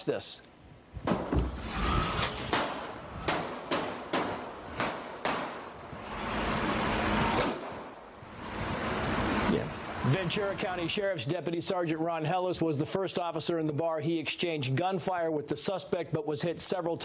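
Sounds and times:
handgun shots: 2.5 - 5.7, 7.4 - 7.9.

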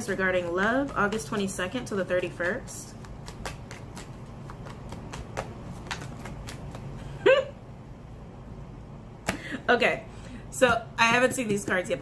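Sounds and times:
cards being shuffled: 0.1 - 7.2.

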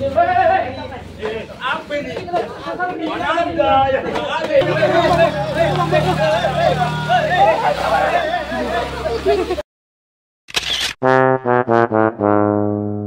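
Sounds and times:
young men shouting and talking: 0.0 - 9.6.

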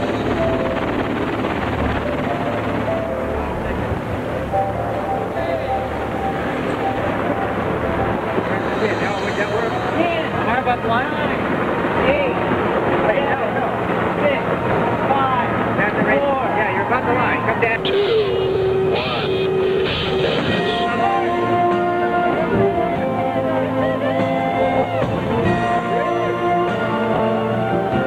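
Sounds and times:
boat engine running: 0.0 - 28.0
water noise: 0.0 - 28.0
wind: 0.0 - 28.0
voices calling out: 11.4 - 28.0.

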